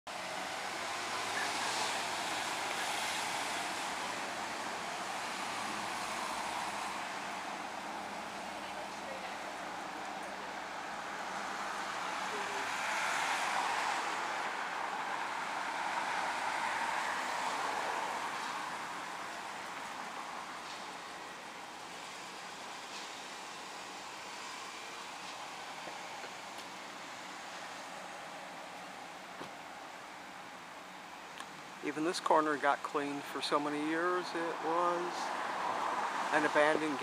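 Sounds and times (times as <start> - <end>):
cars passing: 0.1 - 37.0
faint steady traffic noise: 0.1 - 37.0.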